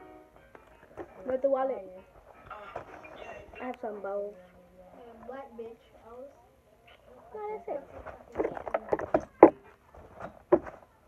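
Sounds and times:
small objects handled: 0:08.1 - 0:10.7.

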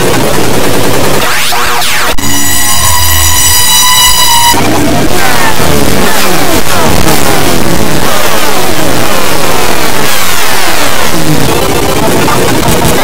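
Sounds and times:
distorted falling pitch sweeps: 0:00.0 - 0:13.0.

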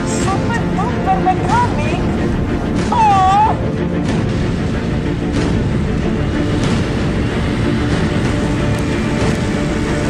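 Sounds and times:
background music: 0:00.0 - 0:10.0
snowmobile engine running: 0:04.1 - 0:10.0.

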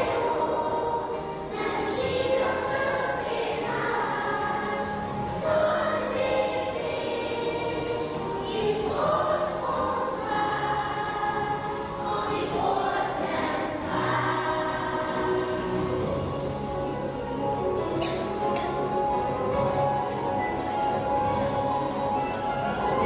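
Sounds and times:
children's choir singing: 0:00.0 - 0:23.0.

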